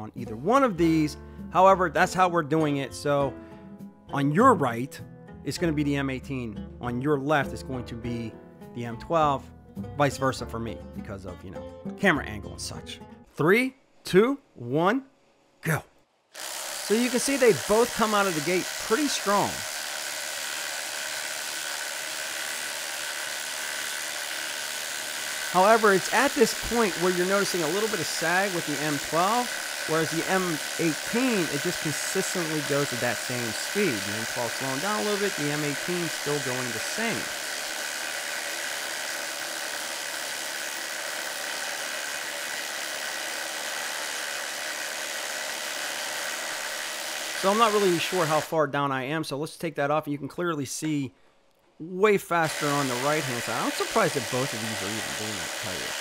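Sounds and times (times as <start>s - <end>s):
impact drivers hammering: 16.4s - 20.8s, 22.0s - 41.4s.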